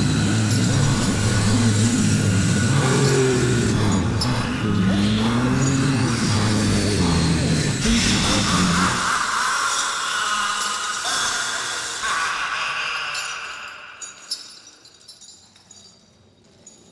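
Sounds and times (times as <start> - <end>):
noisy wash: 0.0 - 14.4
low wavering drone: 0.0 - 14.8
high hissing eerie noise: 0.0 - 15.3.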